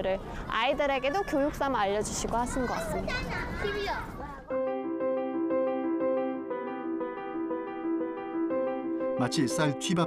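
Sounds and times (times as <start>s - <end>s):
children's voices: 0.8s - 4.5s
keyboard background music: 4.5s - 10.0s.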